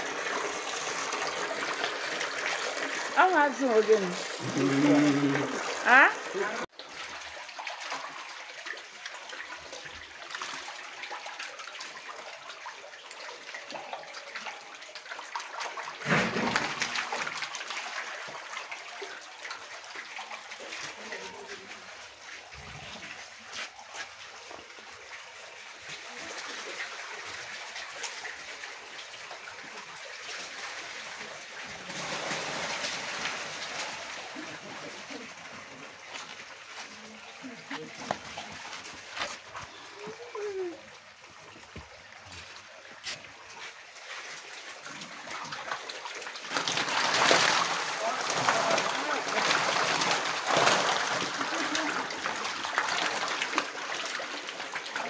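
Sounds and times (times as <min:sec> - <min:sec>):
water splashing and trickling: 0:00.0 - 0:55.0.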